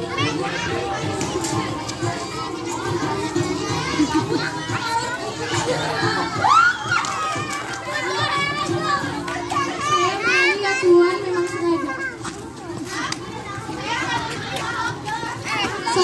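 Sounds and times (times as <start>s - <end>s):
children chattering: 0.0s - 16.0s
children squealing: 6.3s - 7.6s.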